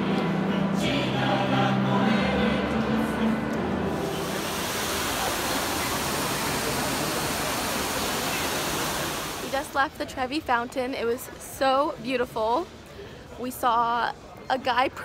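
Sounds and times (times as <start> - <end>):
choir singing: 0.0 - 5.0
fountain water pouring: 4.0 - 9.9.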